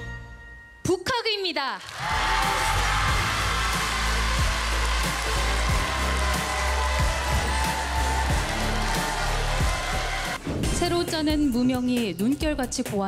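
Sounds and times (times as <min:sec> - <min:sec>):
studio audience applauding and cheering: 0:01.8 - 0:10.4
show music: 0:01.9 - 0:10.5.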